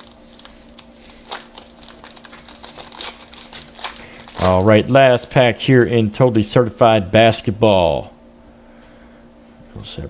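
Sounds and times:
foil wrapper crinkling: 0.0 - 5.0
faint steady hum: 0.0 - 10.0.

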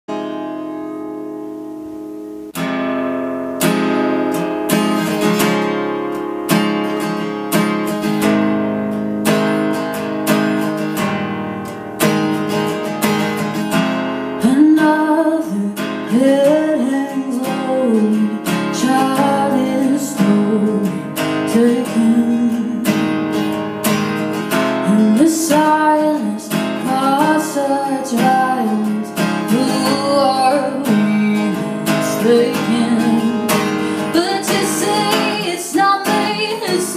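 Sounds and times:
acoustic guitar strumming: 0.1 - 36.9
woman singing: 14.4 - 23.4, 24.7 - 36.9.

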